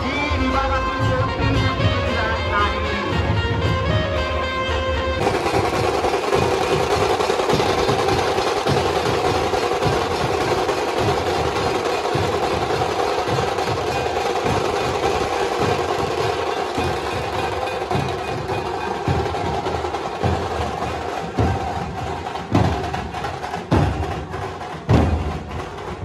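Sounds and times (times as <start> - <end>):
dhol drums beating: 0.4 - 26.0
tasha drum rolls: 5.2 - 26.0.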